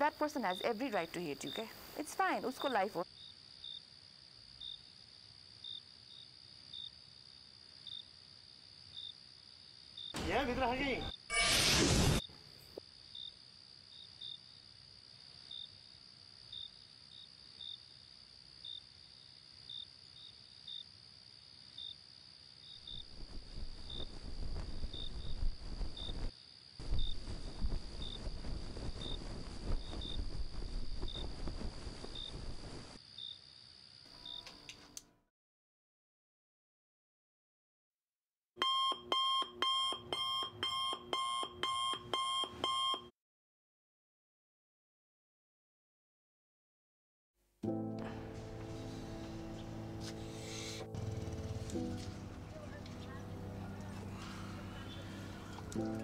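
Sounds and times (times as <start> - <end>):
crickets chirping: 0.0 - 11.3, 12.2 - 34.8
smartphone alarm beeping melody: 38.6 - 43.1.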